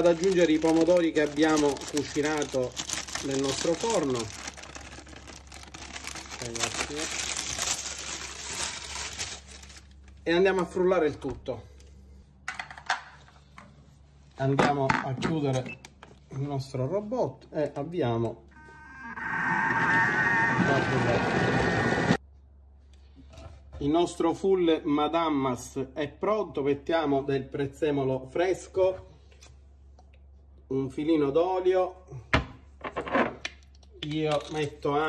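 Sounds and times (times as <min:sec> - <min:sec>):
baking paper crinkling: 0:00.0 - 0:10.6
food processor motor whine: 0:18.6 - 0:22.2.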